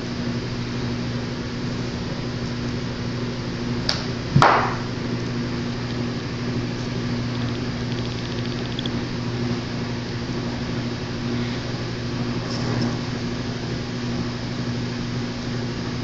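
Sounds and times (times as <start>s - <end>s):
appliance hum: 0.0s - 16.0s.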